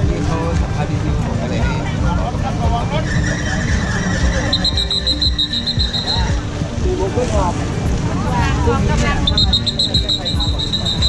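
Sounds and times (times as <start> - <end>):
voices talking: 0.0 - 11.0
rapid high-pitched beeping: 3.2 - 6.5, 9.2 - 11.0.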